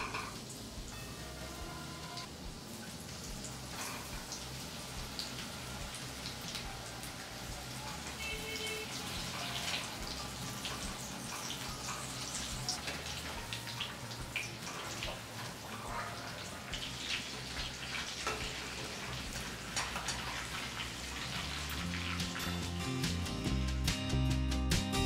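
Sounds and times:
deep-frying in hot oil: 0.0 - 23.6.

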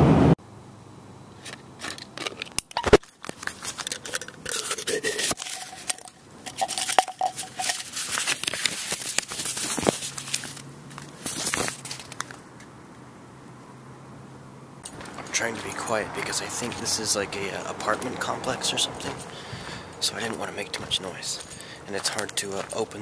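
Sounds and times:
paper crinkling: 1.4 - 12.4
screw cap scraping and clicking: 1.5 - 10.2.

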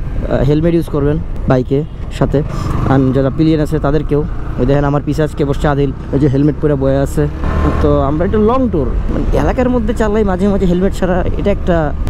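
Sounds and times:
motorcycle engine rumble: 0.0 - 12.0
man talking: 0.2 - 12.0.

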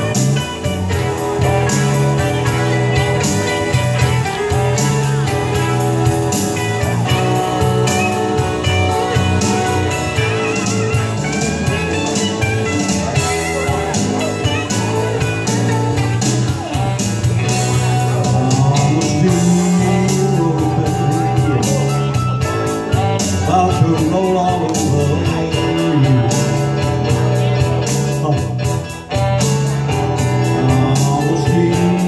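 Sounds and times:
blues-rock backing track: 0.0 - 32.0
guitar: 0.0 - 32.0
steady drum beat: 0.0 - 32.0.

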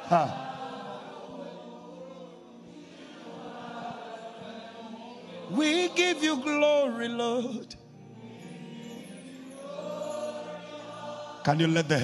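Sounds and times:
choir and congregation singing: 0.0 - 12.0.

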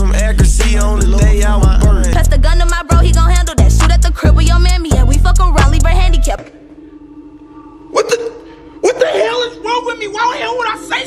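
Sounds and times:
faint steady hum: 0.8 - 11.0.

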